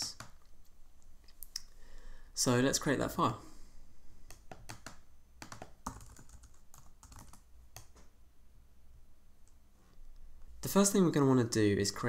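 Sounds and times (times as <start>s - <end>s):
typing on keyboard: 0.0s - 0.4s, 4.3s - 8.0s.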